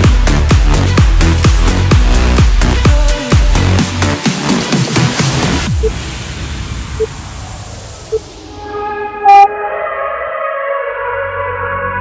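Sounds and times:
bass line: 0.0s - 4.2s, 6.9s - 9.5s
held synth chords: 8.0s - 9.7s
buzzy electronic timer beep: 9.2s - 9.5s.

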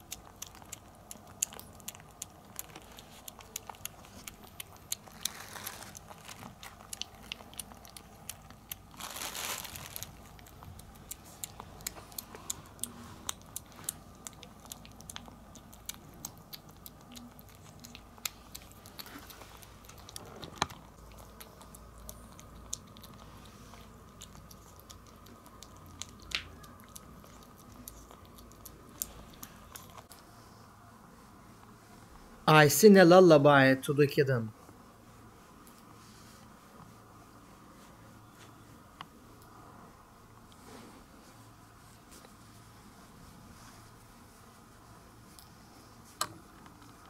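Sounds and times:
kitten chewing and lapping: 0.0s - 30.5s, 38.5s - 47.0s.

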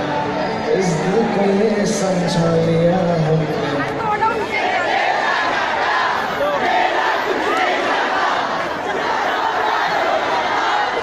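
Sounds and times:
music: 0.0s - 4.1s
crowd shouting and cheering: 0.0s - 11.0s.

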